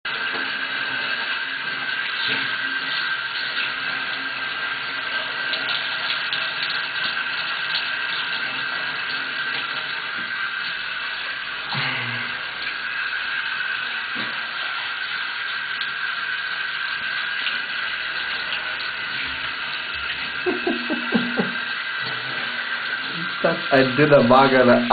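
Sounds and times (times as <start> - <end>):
water running into a bath: 0.0 - 24.9.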